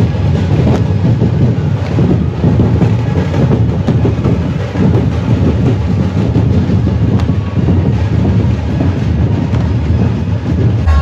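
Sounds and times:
heavy bass rumble: 0.0 - 11.0.

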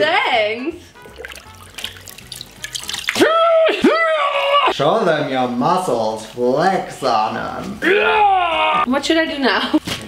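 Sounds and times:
water splashing and dripping: 1.0 - 3.4.

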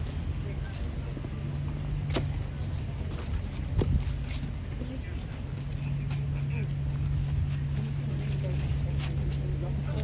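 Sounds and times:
boots marching on paving: 0.0 - 9.8
steady low rumble: 0.0 - 10.0.

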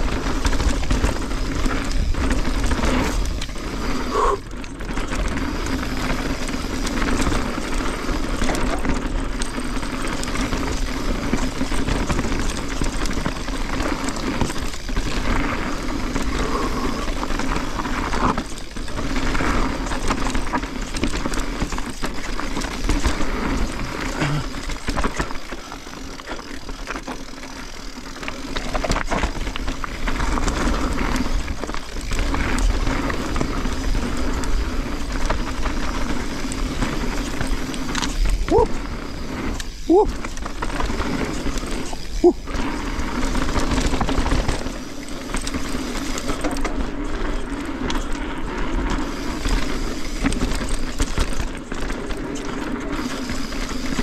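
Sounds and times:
bike rattling over bumps: 0.0 - 54.0
bike tyres rolling on dirt: 0.0 - 54.0.

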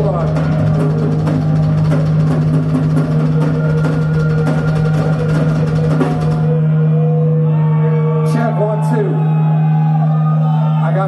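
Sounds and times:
drum kit playing: 0.0 - 6.6.

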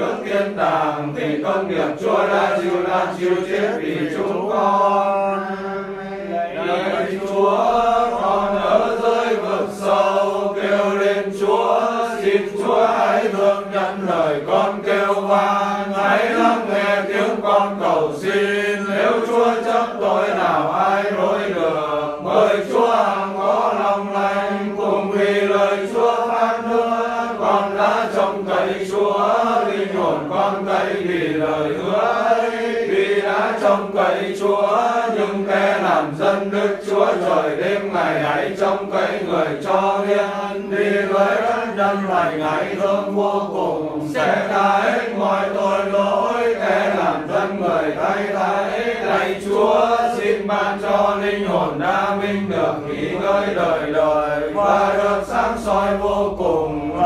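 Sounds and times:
prayer chanted in sing-song: 0.0 - 57.0.

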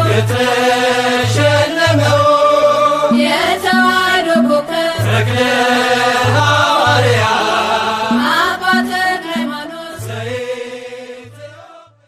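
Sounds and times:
hymn singing: 0.0 - 12.0
instrumental backing with bass and beat: 1.2 - 10.2.

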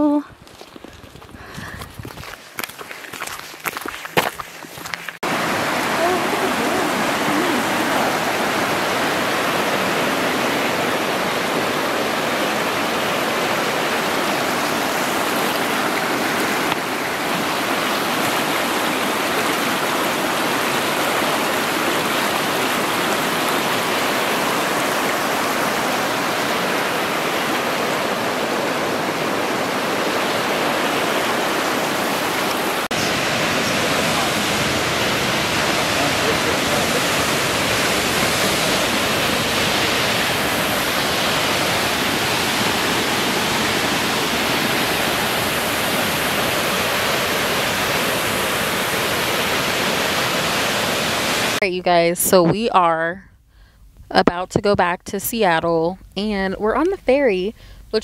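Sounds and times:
river rushing over rocks: 5.2 - 51.6
waterfall pouring: 5.2 - 51.6.

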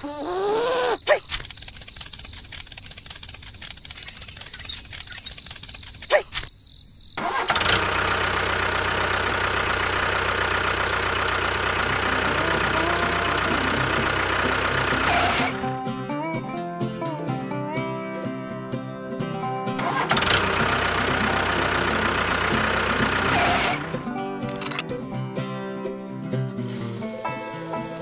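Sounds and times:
tractor engine running: 1.3 - 6.1, 7.2 - 15.7, 19.8 - 24.8.

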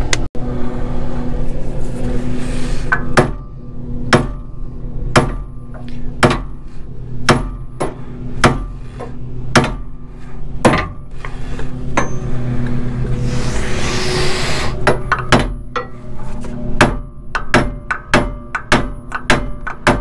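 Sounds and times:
rustling noise: 1.4 - 2.9, 16.0 - 16.8
hammer striking metal: 2.9 - 10.0, 10.6 - 11.1, 11.9 - 12.4, 14.8 - 16.0, 16.8 - 20.0.

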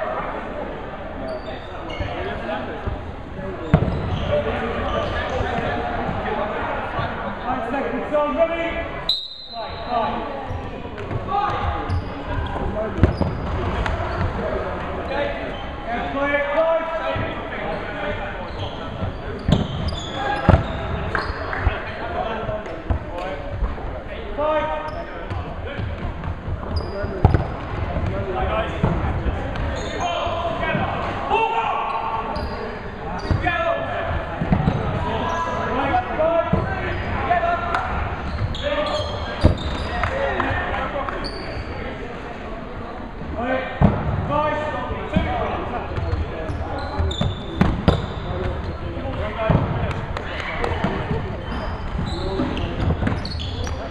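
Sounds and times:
players shouting and chattering: 0.0 - 53.9.

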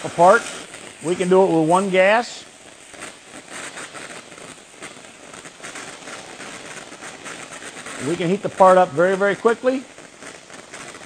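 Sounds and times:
gas torch flame hissing: 0.0 - 11.0
sparks crackling: 0.0 - 11.0.

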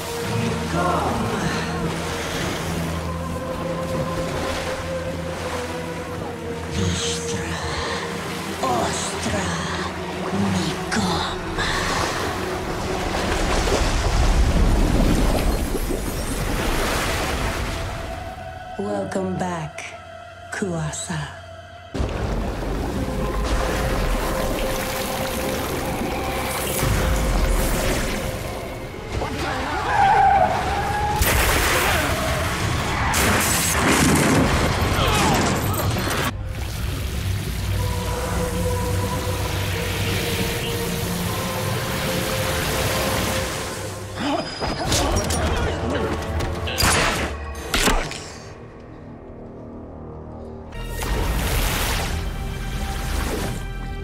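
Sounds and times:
low musical drone: 0.0 - 15.2, 36.3 - 44.2
rushing surging water: 22.0 - 33.1, 36.4 - 44.2.

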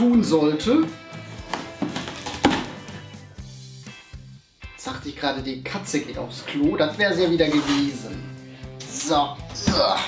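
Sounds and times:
packing tape ripped off box: 1.4 - 2.8.

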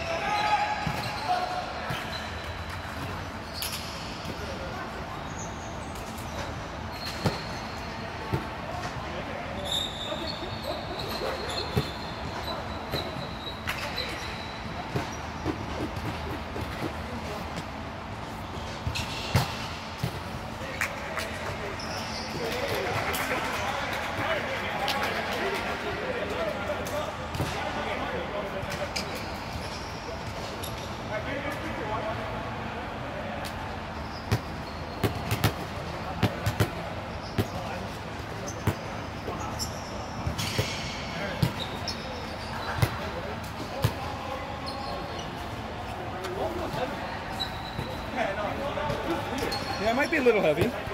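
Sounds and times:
balls bouncing on hard court: 7.0 - 7.6, 10.9 - 14.3, 14.9 - 17.8, 18.8 - 23.4, 34.2 - 44.1, 48.9 - 50.9
players chatting: 41.2 - 50.9.

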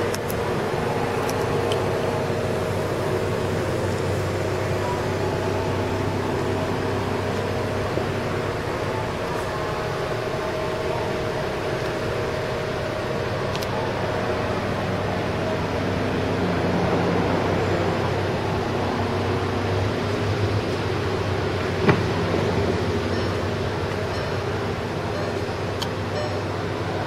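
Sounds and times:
mechanical hum with held tones: 0.0 - 27.0.

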